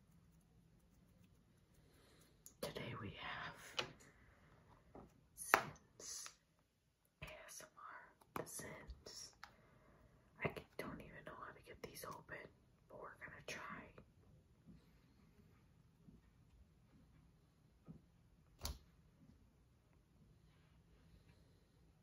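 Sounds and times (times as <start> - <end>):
woman whispering: 2.6 - 3.9, 5.4 - 6.3, 7.2 - 9.4, 10.4 - 14.1.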